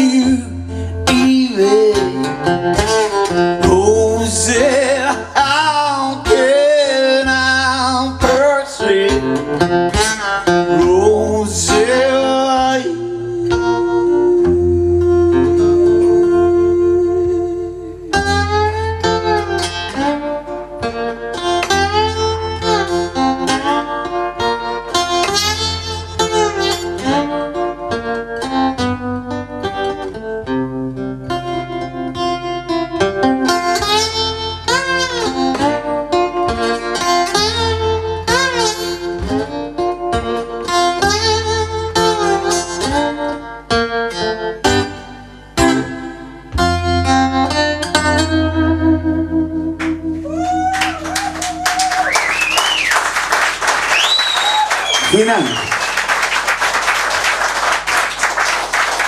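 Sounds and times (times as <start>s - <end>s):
acoustic guitar playing: 0.0s - 59.0s.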